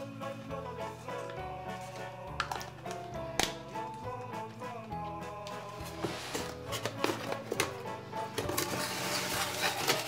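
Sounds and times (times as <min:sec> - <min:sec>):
instrumental music: 0:00.0 - 0:10.0.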